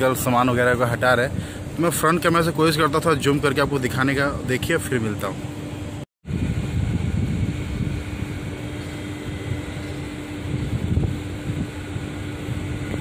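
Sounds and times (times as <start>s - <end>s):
low mechanical hum: 0.0s - 13.0s
wind buffeting microphone: 6.2s - 13.0s.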